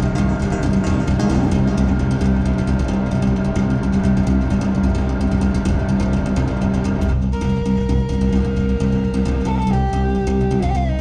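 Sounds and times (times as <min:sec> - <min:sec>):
fast tapped string notes: 0:00.0 - 0:11.0
held low bass note: 0:00.0 - 0:11.0.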